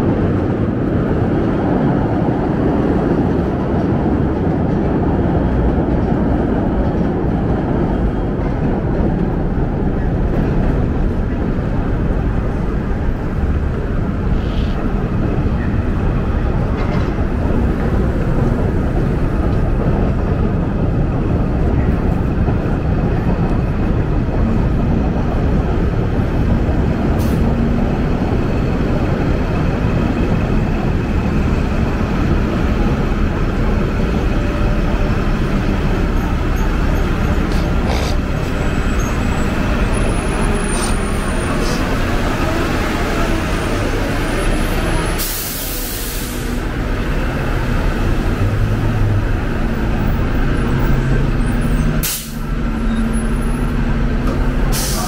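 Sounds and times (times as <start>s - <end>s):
city traffic rumble: 0.0s - 55.0s.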